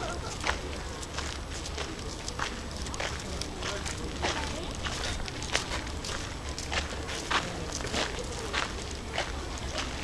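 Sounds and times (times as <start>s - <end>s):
footsteps on paved path: 0.0s - 10.0s.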